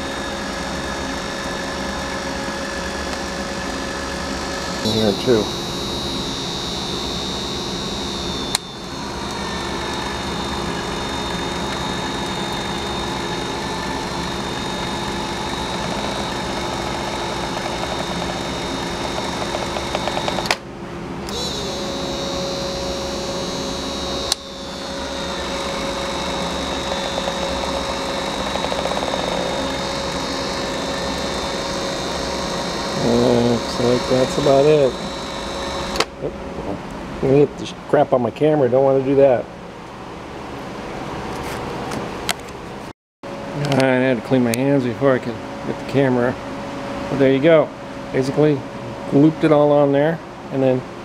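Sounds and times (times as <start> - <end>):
caulk gun motor whine: 0.0 - 20.6, 21.2 - 36.2.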